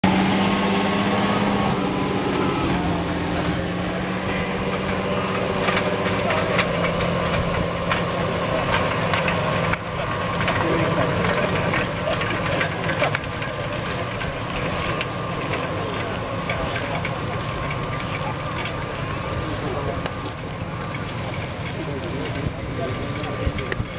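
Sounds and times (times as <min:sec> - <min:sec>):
tractor engine under load: 0:00.0 - 0:23.9
discs rattling and scraping in soil: 0:01.8 - 0:23.9.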